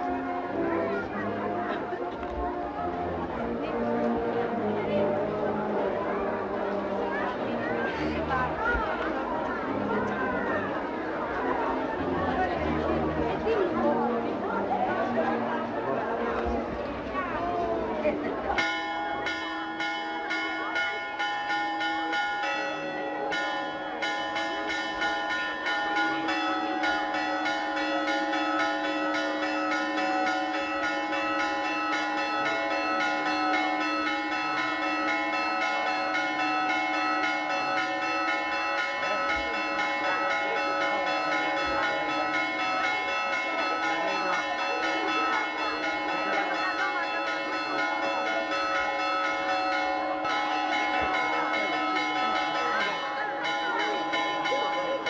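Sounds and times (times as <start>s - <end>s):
church bells pealing: 0.0s - 55.0s.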